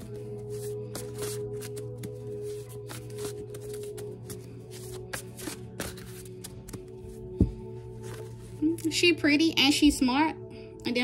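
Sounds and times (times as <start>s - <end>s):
cards being shuffled: 0.0s - 8.6s
soft background music: 0.0s - 11.0s.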